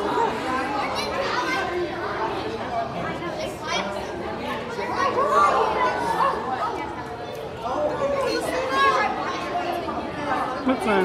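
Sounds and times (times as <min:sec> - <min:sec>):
echoing chatter of voices: 0:00.0 - 0:11.0.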